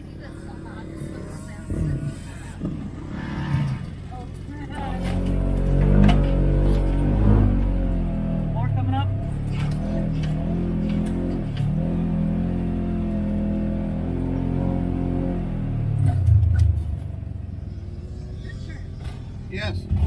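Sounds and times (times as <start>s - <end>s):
off-road vehicle engine revving: 0.0s - 20.0s.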